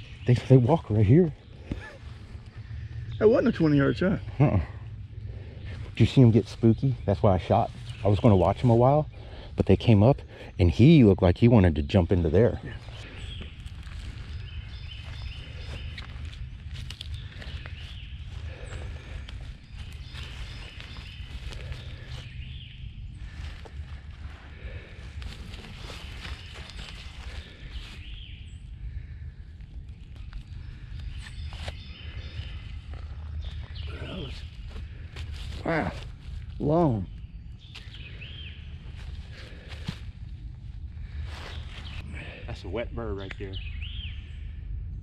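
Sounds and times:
steady low rumble: 0.0s - 45.0s
footsteps in dry leaves: 12.7s - 28.4s, 30.2s - 36.8s, 37.6s - 42.0s.

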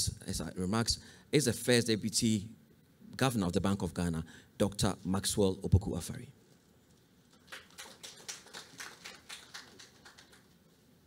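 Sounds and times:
sparse hand-clapping: 7.4s - 10.6s.

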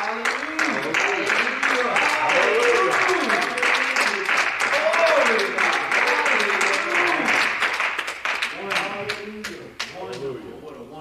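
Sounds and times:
rapid handclapping: 0.0s - 10.3s.

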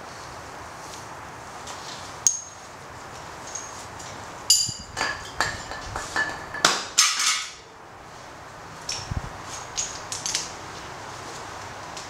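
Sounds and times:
steel tools clinking on metal: 3.5s - 7.6s.

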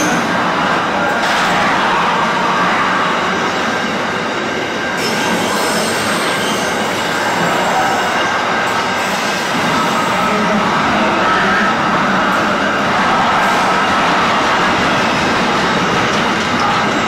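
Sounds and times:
freight train rolling past: 0.0s - 17.0s
wheel-on-rail noise: 0.0s - 17.0s.

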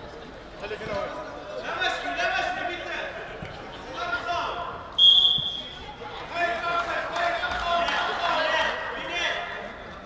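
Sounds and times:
players and spectators voices: 0.0s - 10.0s
referee whistle blast: 5.0s - 5.8s.

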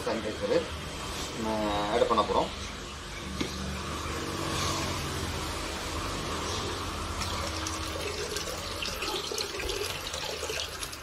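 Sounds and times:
steady water noise: 6.9s - 11.0s
liquid poured into bucket splashing: 7.2s - 11.0s.

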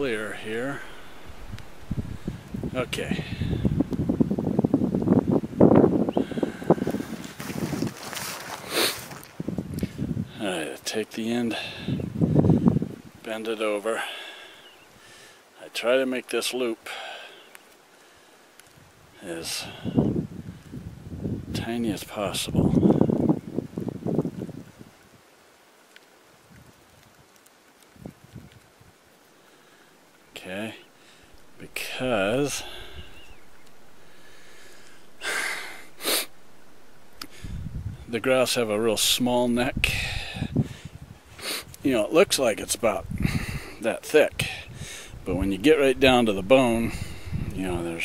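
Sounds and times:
wind buffeting microphone: 0.0s - 10.4s, 11.6s - 13.2s, 19.6s - 25.2s, 27.9s - 29.0s, 30.9s - 48.0s
short hissing rustle: 6.6s - 9.3s, 30.8s - 38.0s, 39.6s - 41.8s.

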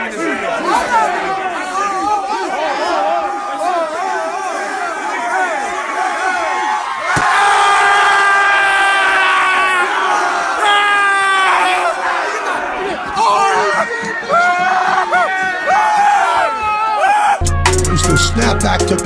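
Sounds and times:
people talking over one another: 0.0s - 7.0s, 9.9s - 19.0s
group yelling: 0.0s - 17.6s
people shouting: 0.0s - 18.8s.

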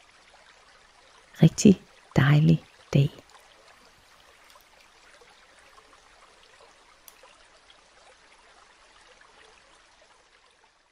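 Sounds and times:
stream trickling: 0.0s - 10.9s.

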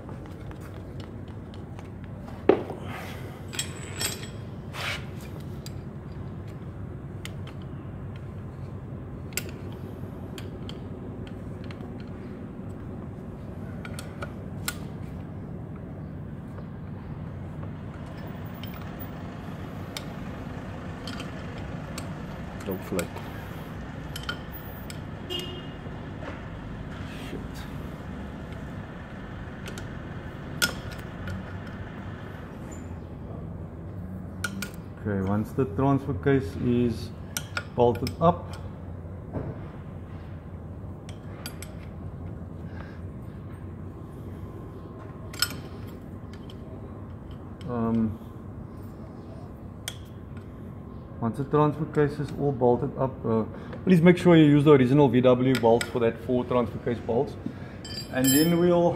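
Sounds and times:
steady low hum: 0.0s - 58.9s
allen key and bolts clinking: 3.4s - 4.6s, 45.3s - 47.7s, 57.8s - 58.9s.

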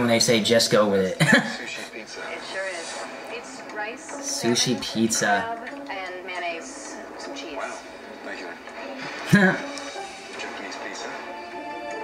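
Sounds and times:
background music: 0.0s - 12.0s
man laughing loudly: 9.3s - 9.6s.

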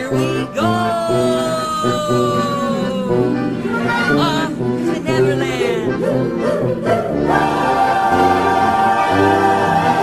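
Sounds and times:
orchestral music: 0.0s - 10.0s
choir singing: 1.2s - 10.0s.

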